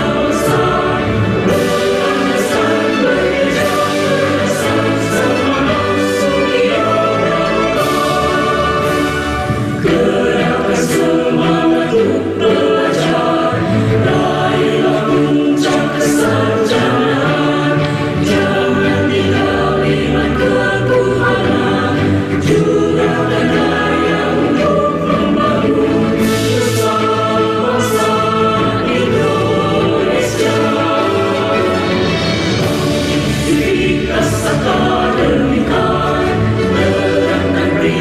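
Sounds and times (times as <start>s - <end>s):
mixed choir singing: 0.0s - 38.0s
musical accompaniment: 0.0s - 38.0s.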